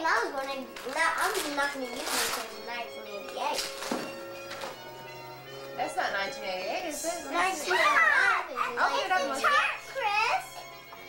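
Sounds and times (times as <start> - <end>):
children talking excitedly: 0.0 - 3.8, 5.8 - 10.7.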